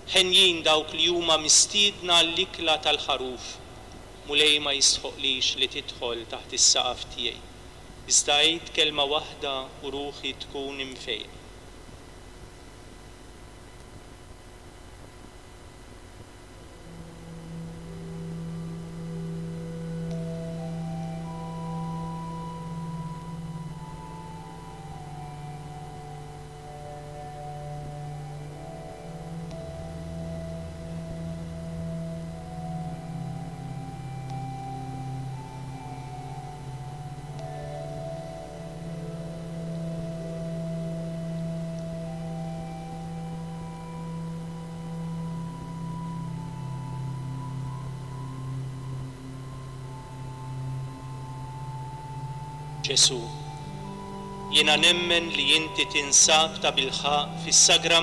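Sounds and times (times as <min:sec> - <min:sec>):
soft organ music: 0:00.0 - 0:58.0.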